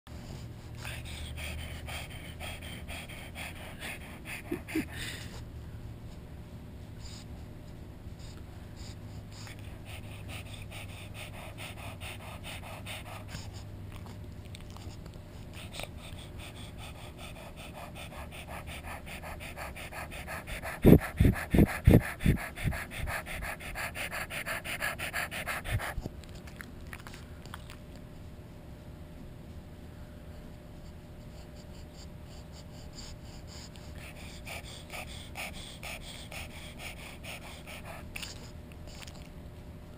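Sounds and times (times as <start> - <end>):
dog panting: 0.2 - 5.5, 6.9 - 28.3, 30.4 - 39.3.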